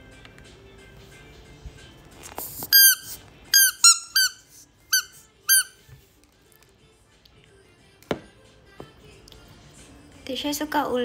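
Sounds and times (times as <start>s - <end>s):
rubber duck toy squeaking: 2.7s - 5.8s.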